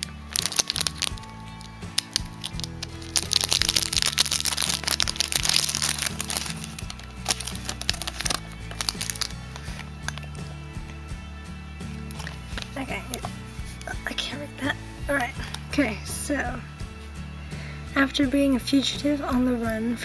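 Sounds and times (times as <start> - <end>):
packaging crinkling and clicking: 0.0 - 10.3
background music: 0.0 - 20.0.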